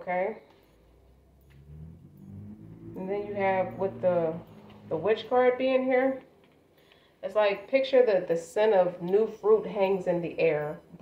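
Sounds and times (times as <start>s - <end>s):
low motor hum: 0.5s - 6.2s.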